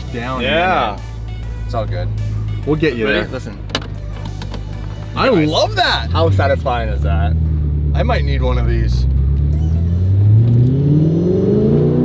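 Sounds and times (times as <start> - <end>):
car engine revving inside cabin: 0.0 - 12.0.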